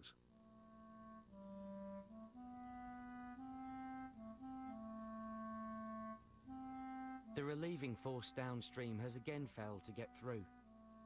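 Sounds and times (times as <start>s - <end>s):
clarinet playing slow melody: 0.0s - 11.0s.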